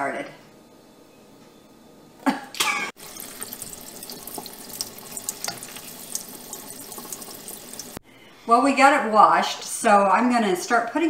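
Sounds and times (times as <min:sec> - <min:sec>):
faucet water running into sink: 0:03.0 - 0:08.0
hands rinsing herbs splashing: 0:03.0 - 0:08.0.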